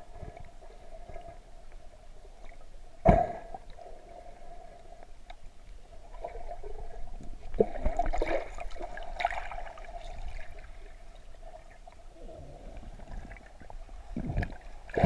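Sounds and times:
underwater water swishing and gurgling: 0:00.0 - 0:15.0
water sloshing with bubbly clicks: 0:00.0 - 0:15.0.

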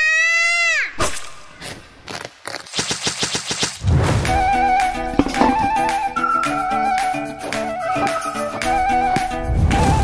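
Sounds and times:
loose knocks: 0:05.2 - 0:05.9.

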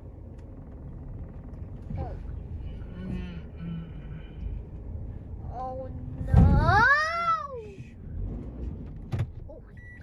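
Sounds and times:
car engine rumbling: 0:00.0 - 0:10.0.

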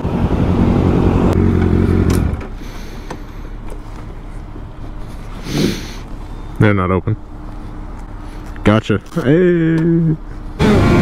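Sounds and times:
loud low engine drone: 0:00.0 - 0:08.6, 0:09.3 - 0:11.0
engines idling in traffic: 0:00.0 - 0:11.0.

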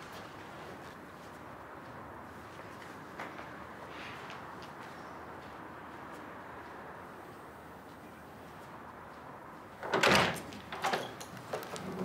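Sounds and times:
door clattering open: 0:09.8 - 0:12.0.

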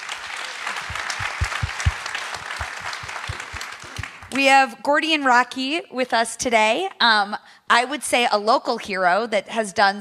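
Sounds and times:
audience applauding: 0:00.0 - 0:04.4
dull low thumps: 0:00.9 - 0:03.6.

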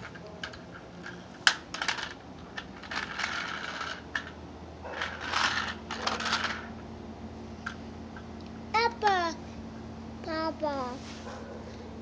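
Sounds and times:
toy car clattering on concrete: 0:00.0 - 0:06.7.

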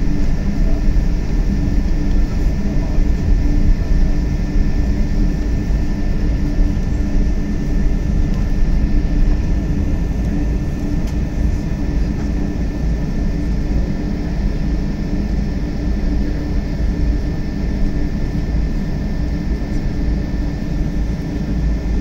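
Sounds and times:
jet engine cabin rumble: 0:00.0 - 0:22.0
thin steady whine: 0:00.0 - 0:22.0.

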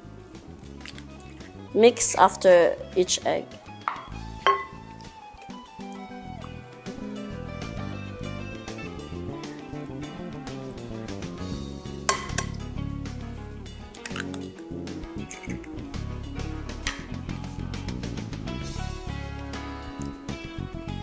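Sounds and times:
acoustic guitar music: 0:03.7 - 0:20.5
whisk clinking against glass bowl: 0:03.9 - 0:04.8.

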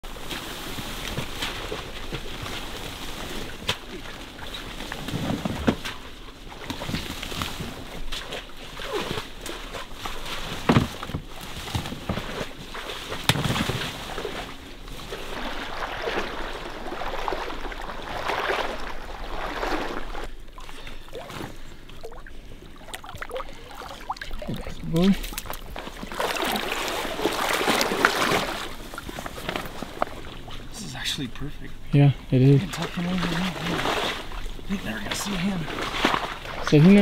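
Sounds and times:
water sloshing: 0:00.0 - 0:37.0
footsteps in marsh: 0:22.8 - 0:30.7.

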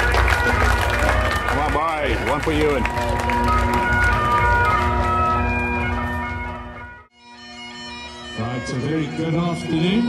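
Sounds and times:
bagpipes playing: 0:00.0 - 0:10.0.

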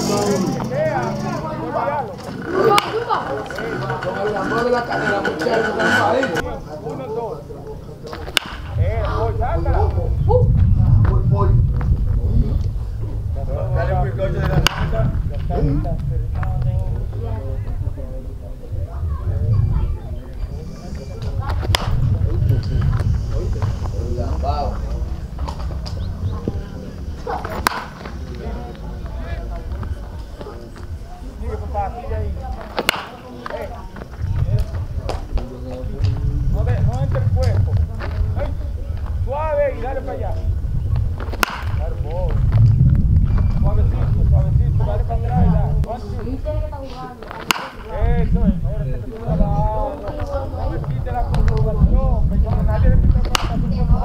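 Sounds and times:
voices talking: 0:00.0 - 0:54.0
baseball bat hitting ball: 0:02.6 - 0:03.1, 0:08.1 - 0:08.8, 0:14.5 - 0:15.0, 0:21.6 - 0:22.0, 0:27.2 - 0:28.2, 0:32.6 - 0:33.6, 0:41.2 - 0:42.0, 0:47.3 - 0:48.0, 0:53.2 - 0:53.6.

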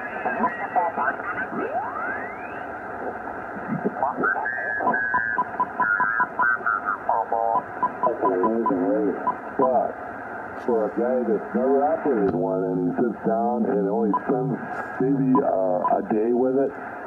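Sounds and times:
garbled radio voices: 0:00.0 - 0:17.0
radio band noise: 0:00.0 - 0:17.0.

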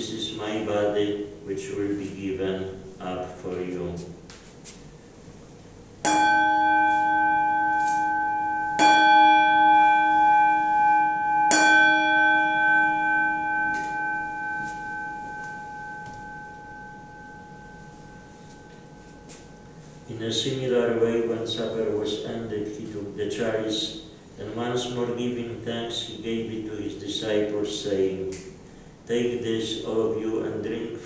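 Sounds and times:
altar bell ringing: 0:06.0 - 0:21.4.

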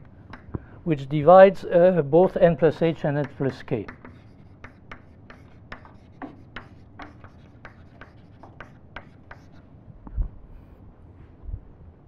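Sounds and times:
chalk scratching on chalkboard: 0:03.2 - 0:09.7.

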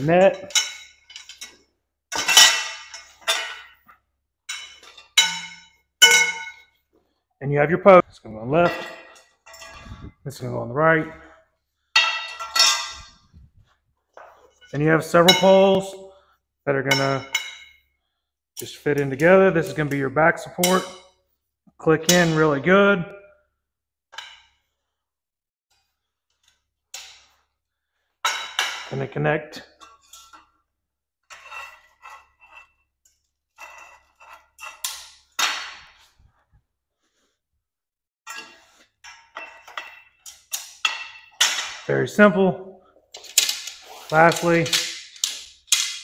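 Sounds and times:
metal frame post clanging on concrete: 0:00.0 - 0:06.8, 0:08.5 - 0:10.1, 0:11.9 - 0:13.5, 0:16.9 - 0:17.8, 0:20.5 - 0:21.2, 0:24.1 - 0:24.6, 0:38.3 - 0:41.9
metal poles clinking: 0:00.0 - 0:07.1, 0:07.9 - 0:16.2, 0:16.8 - 0:18.0, 0:18.6 - 0:21.3, 0:24.1 - 0:24.8, 0:25.7 - 0:27.5, 0:28.2 - 0:36.4, 0:38.3 - 0:46.0.

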